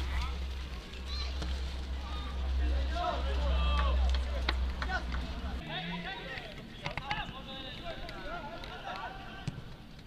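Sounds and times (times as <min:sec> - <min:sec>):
footballers shouting: 0:01.0 - 0:09.8.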